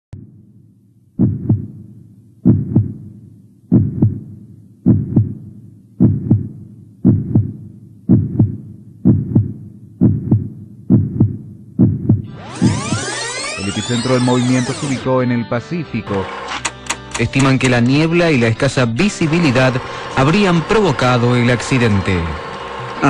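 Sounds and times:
heartbeat double beats: 0.1 - 13.1.

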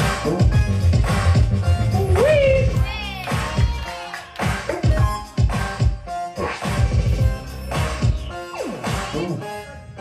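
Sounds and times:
music with heavy bass hits: 4.5 - 9.4.

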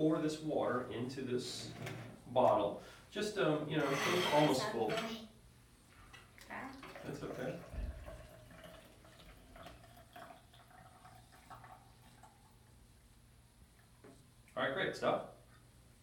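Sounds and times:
water trickling into a bottle: 6.3 - 12.8
low thump: 7.7 - 8.0.

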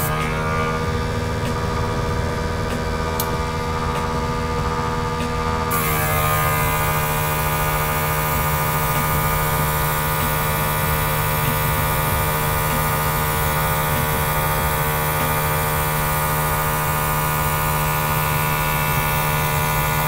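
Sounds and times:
compressor humming: 0.0 - 20.0
airbrush spray hiss: 5.7 - 20.0.

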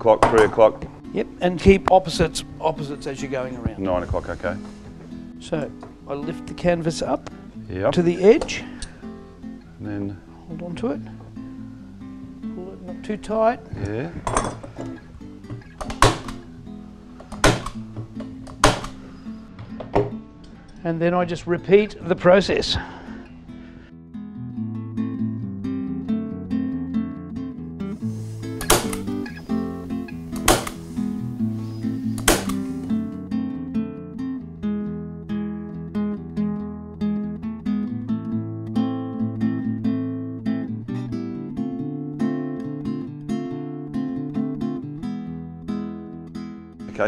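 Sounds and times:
acoustic guitar music: 0.0 - 47.0
sharp clicks: 28.4 - 30.8, 32.1 - 32.7.

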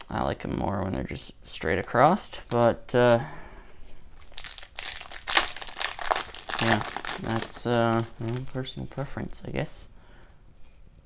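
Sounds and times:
wrapper crinkling as torn open: 4.2 - 9.4.

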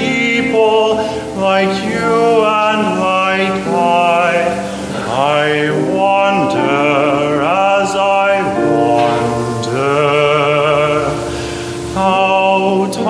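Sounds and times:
young man singing: 0.0 - 13.0.

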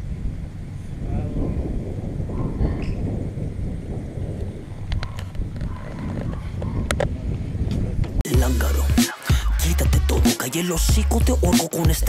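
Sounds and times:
wind buffeting microphone: 0.0 - 8.3.

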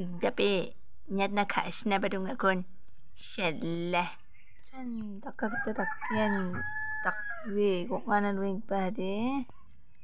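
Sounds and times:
woman talking: 0.0 - 2.6, 3.2 - 6.7, 7.5 - 9.5
rooster crowing: 5.5 - 7.5.

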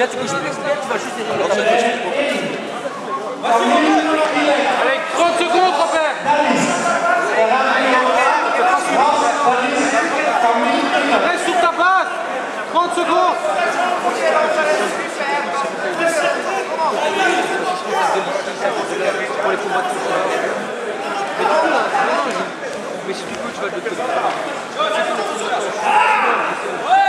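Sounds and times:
voices talking and calling out: 0.0 - 27.0.

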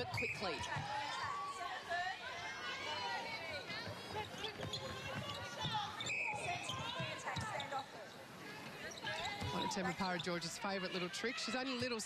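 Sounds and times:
court shoes squeaking: 0.0 - 1.7, 2.6 - 12.0
murmur of arena crowd: 0.0 - 12.0
players' voices: 0.0 - 12.0.

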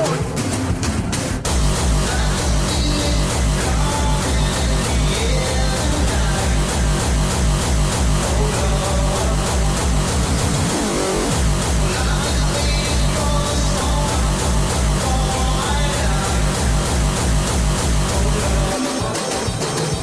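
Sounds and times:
electronic kick drum pounding: 0.0 - 20.0
synth lines: 1.4 - 19.2.

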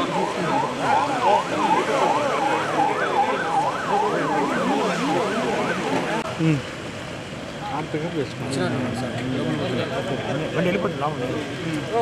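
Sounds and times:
police siren yelping: 0.0 - 6.3
crowd voices: 0.0 - 12.0.

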